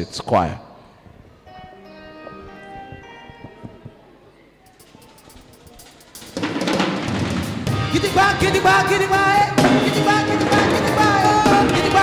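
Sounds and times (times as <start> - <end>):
soft taps: 2.2 - 4.1
band playing a praise chorus: 7.1 - 12.0.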